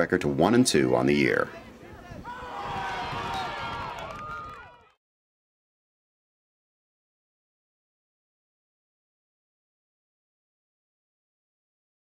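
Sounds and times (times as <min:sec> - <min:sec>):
people shouting and cheering: 0:01.5 - 0:05.0.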